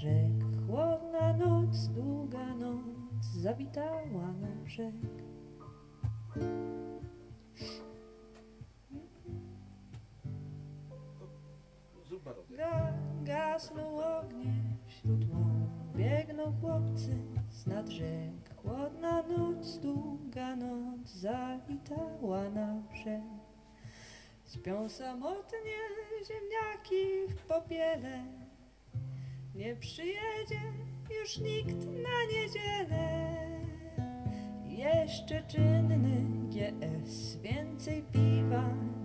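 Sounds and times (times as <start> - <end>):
person singing: 0.0 - 5.2, 12.5 - 23.5, 24.5 - 28.6, 29.6 - 39.0.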